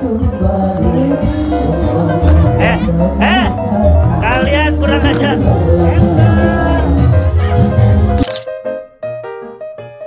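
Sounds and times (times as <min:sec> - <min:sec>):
loud music and voices: 0:00.0 - 0:08.2
light keyboard melody: 0:00.0 - 0:10.0
camera shutter click: 0:08.2 - 0:08.5.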